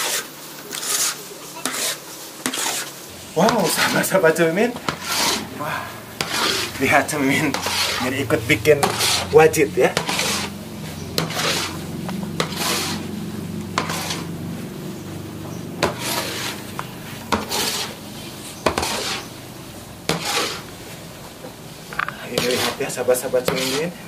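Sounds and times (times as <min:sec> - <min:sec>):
wooden paddle scraping wok: 0:00.0 - 0:24.0.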